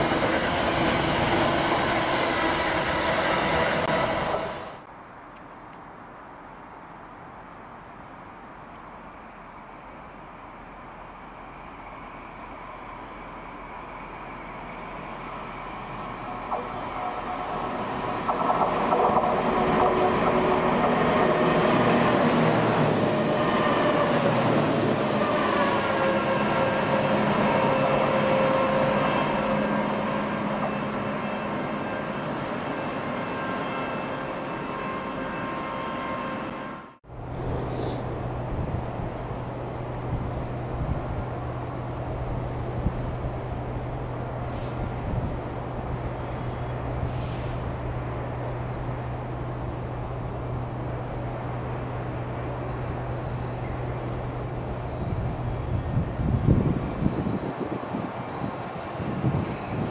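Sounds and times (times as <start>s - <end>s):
freight train rumble: 0.0s - 4.9s, 10.2s - 59.9s
diesel locomotive engine hum: 0.0s - 5.1s, 6.1s - 59.9s
train wheels squealing: 8.8s - 36.8s.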